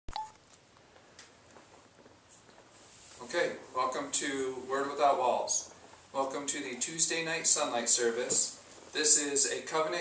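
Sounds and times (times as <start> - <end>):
electronic beep: 0.1 - 0.4.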